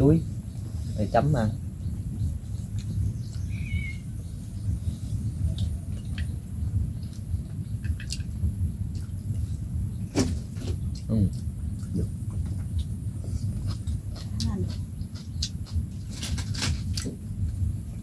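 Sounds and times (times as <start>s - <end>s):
steady low rumble: 0.0s - 18.0s.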